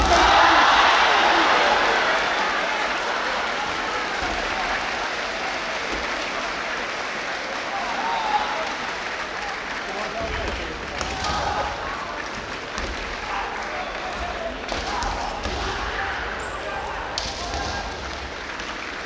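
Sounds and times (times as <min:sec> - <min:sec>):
audience applause: 0:00.0 - 0:19.0
crowd chatter: 0:00.0 - 0:19.0.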